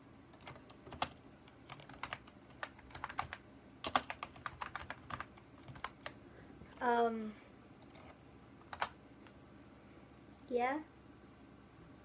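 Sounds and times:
typing on computer keyboard: 0:00.3 - 0:06.2, 0:07.8 - 0:09.0.

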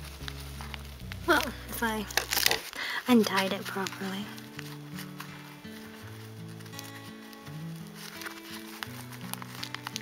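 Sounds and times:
soft background music: 0:00.0 - 0:10.0
twine ticks and paper rustles: 0:00.0 - 0:10.0.

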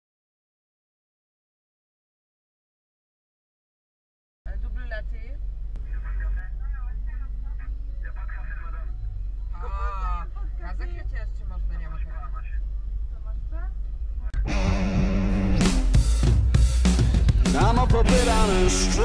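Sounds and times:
low rumble in car cabin: 0:04.5 - 0:15.6
women chatting: 0:09.6 - 0:12.3.

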